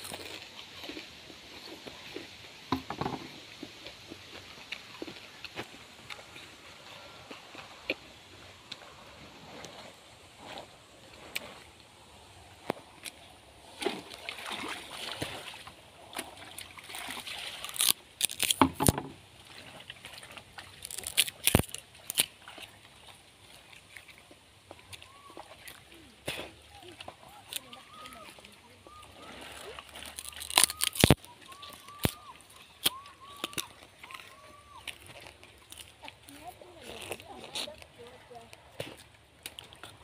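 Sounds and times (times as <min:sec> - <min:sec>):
water splashing in plastic basin: 0:13.7 - 0:21.1.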